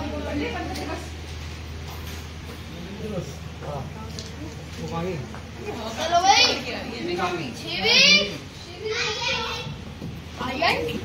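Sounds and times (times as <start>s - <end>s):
children shrieking and shouting: 7.8s - 9.8s.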